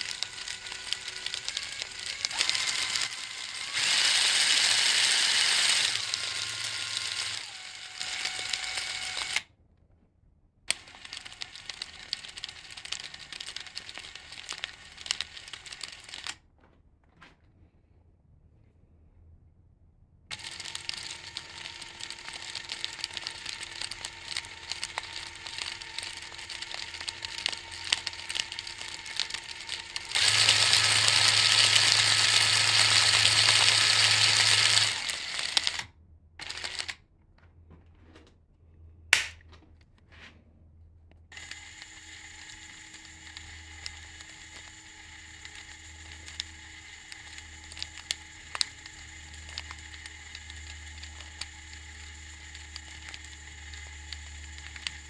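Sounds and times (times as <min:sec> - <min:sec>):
motor hum: 0:00.0 - 0:09.5, 0:10.7 - 0:16.4, 0:20.3 - 0:37.1, 0:41.3 - 0:55.0
plastic gears clicking and rattling: 0:00.0 - 0:09.5, 0:10.7 - 0:16.4, 0:20.3 - 0:37.0, 0:41.3 - 0:55.0
sharp click: 0:39.2 - 0:39.5.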